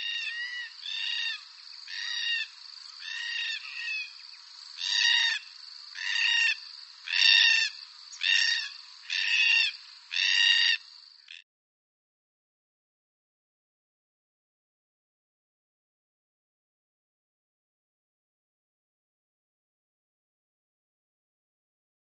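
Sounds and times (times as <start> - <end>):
cockatoo harsh ringing calls: 0.0 - 4.2, 4.8 - 11.4.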